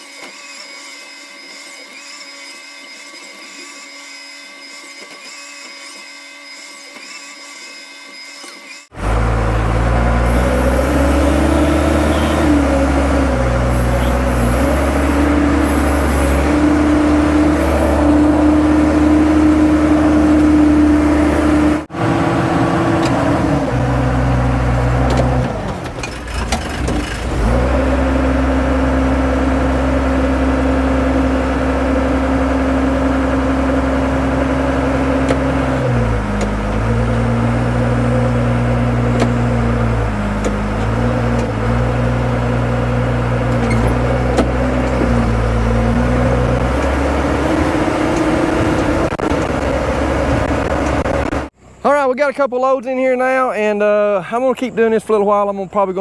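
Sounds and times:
dump truck diesel engine revving: 8.9s - 51.6s
excavator diesel engine running: 8.9s - 52.2s.

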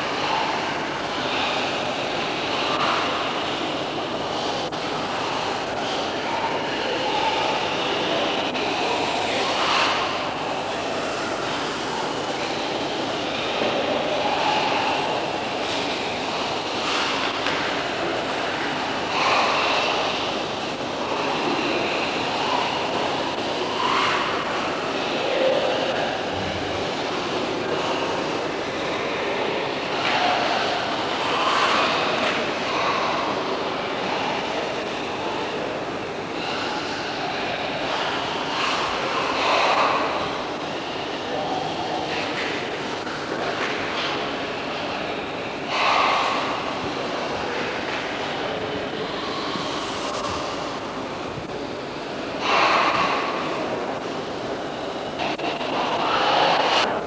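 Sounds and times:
reverberant sports hall rumble: 0.0s - 57.0s.

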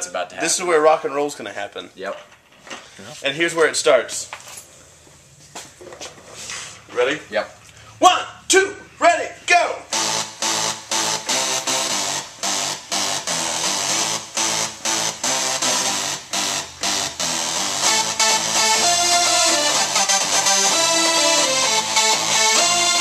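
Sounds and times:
electronic synth music: 9.6s - 23.0s.

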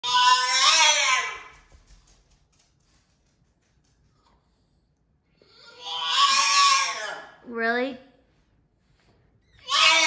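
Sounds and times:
dog whining: 5.4s - 7.4s, 9.5s - 10.0s.

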